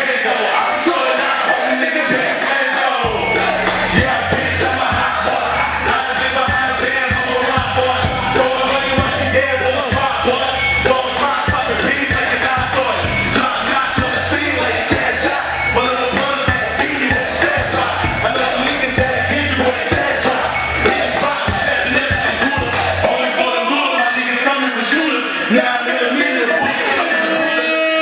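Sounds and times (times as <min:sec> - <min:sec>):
loud hip-hop beat: 0:00.0 - 0:28.0
rapping into microphones: 0:00.0 - 0:28.0.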